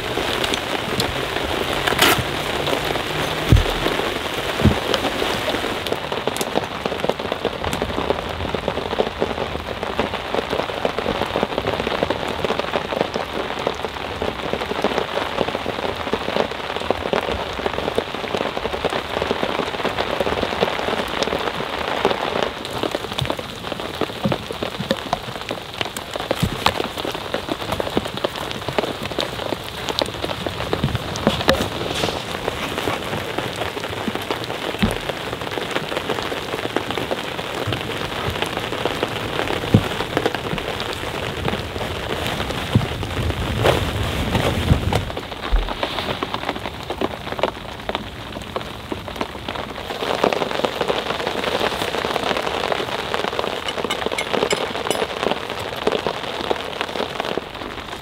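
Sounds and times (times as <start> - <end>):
rain falling: 0.0 - 58.0.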